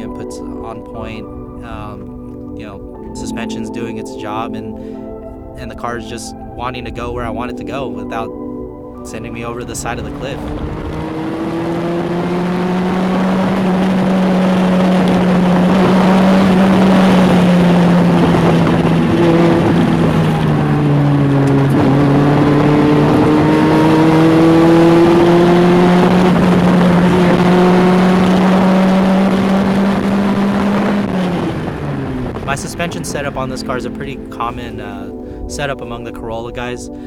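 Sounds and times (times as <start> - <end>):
car engine at high revs: 9.2 - 33.7.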